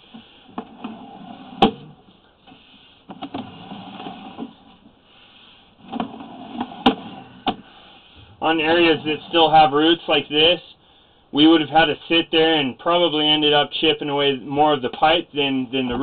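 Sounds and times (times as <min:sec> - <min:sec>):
faint steady hiss: 0:00.0 - 0:16.0.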